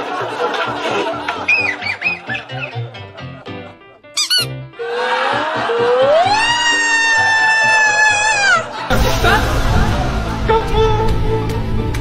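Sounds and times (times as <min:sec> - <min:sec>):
background music: 0:00.0 - 0:12.0
long high-pitched cry: 0:04.2 - 0:04.5
high squeak: 0:04.2 - 0:04.6.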